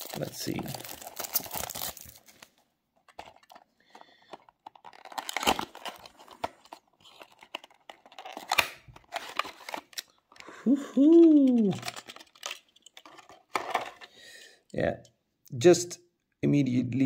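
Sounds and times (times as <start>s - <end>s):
cardboard box rustling and tearing: 0.0s - 2.4s, 4.6s - 9.9s.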